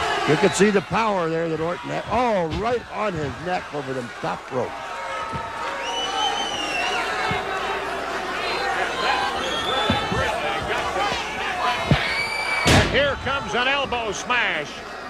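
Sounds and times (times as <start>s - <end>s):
crowd shouting: 0.0s - 15.0s.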